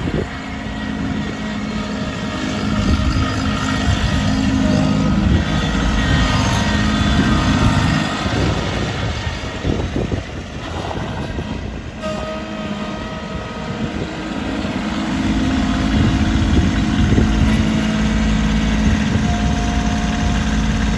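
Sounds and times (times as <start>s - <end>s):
thin whine: 0.0s - 20.9s
tractor engine running: 0.0s - 20.9s.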